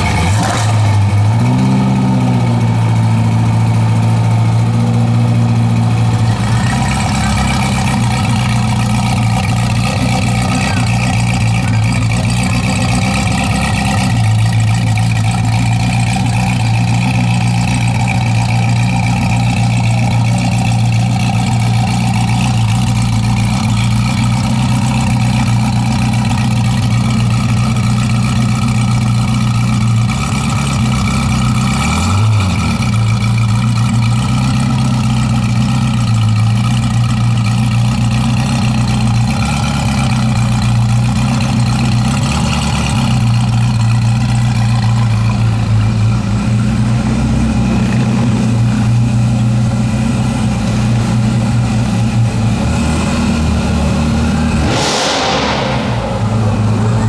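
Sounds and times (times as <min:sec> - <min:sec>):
car engine idling: 0:00.0 - 0:57.0
engine throttle blip: 0:04.2 - 0:29.6.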